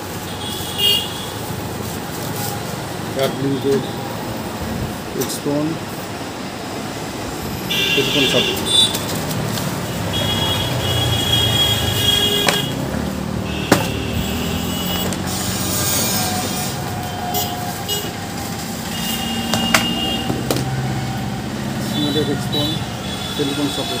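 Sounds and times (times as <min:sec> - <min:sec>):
vehicle engines running: 0:00.0 - 0:24.0.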